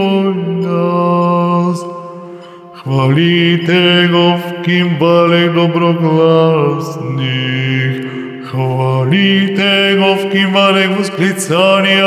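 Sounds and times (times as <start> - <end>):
man singing church chant: 0.0 - 12.0.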